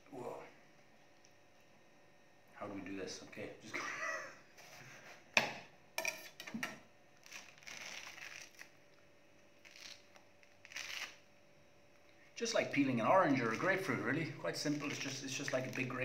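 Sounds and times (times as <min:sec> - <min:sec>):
fruit rind ripping: 0:07.2 - 0:11.3, 0:14.6 - 0:16.0
rind rustling: 0:07.2 - 0:11.3, 0:13.2 - 0:16.0.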